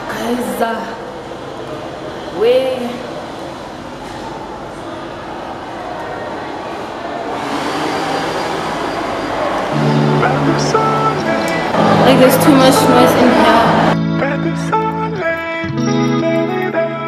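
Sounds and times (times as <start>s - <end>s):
indistinct background voices: 0.0s - 15.5s
music with held notes: 9.7s - 17.0s.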